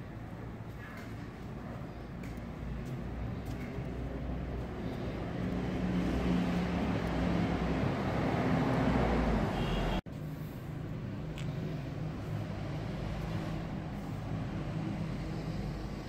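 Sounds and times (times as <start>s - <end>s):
road traffic noise: 0.0s - 16.0s
passing vehicle engine drone: 2.2s - 16.0s.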